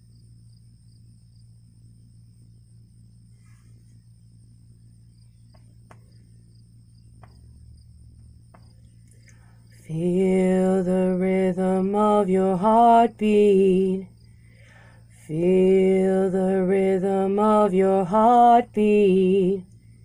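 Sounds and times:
faint background hum: 0.0s - 20.0s
thin high whine: 1.5s - 20.0s.

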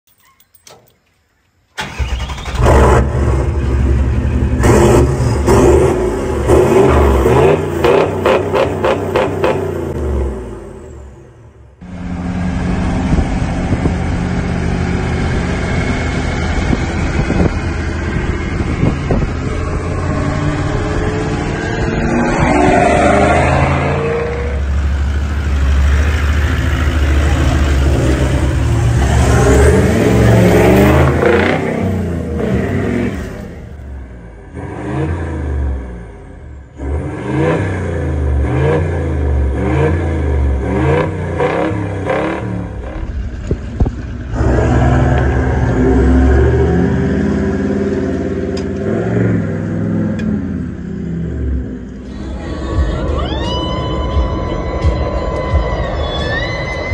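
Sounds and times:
vehicle engines revving: 1.8s - 56.9s.

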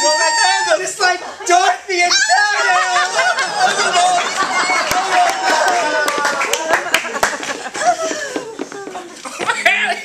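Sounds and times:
excited wordless voices: 0.0s - 10.0s
people laughing: 0.1s - 10.0s
hand clapping: 4.8s - 7.9s.

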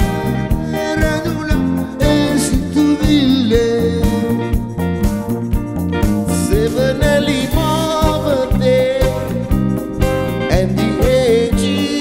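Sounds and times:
instrumental backing with steady beat: 0.0s - 12.0s
man singing into a microphone: 0.6s - 4.5s, 6.3s - 9.6s, 10.4s - 12.0s.

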